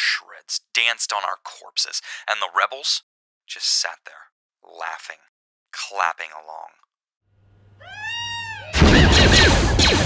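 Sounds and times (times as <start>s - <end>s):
squealing chattering creature cries: 7.8s - 9.2s
wailing creature cry: 7.8s - 9.2s.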